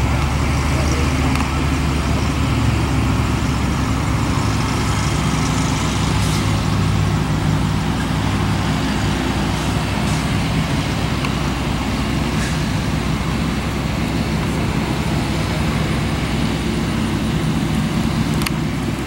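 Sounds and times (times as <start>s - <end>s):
constant noise: 0.0s - 19.0s
low engine hum: 0.0s - 19.0s.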